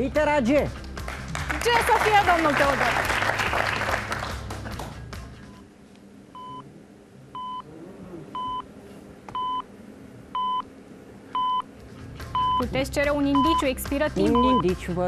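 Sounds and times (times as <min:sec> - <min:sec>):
music: 0:00.0 - 0:05.7, 0:11.6 - 0:15.0
applause: 0:00.9 - 0:05.1
short electronic timer beeps: 0:12.3 - 0:12.7.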